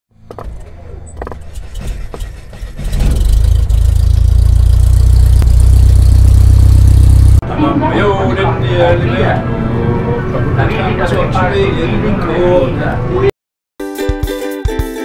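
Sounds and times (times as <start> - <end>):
loud low rumble with hiss: 3.0 - 7.4.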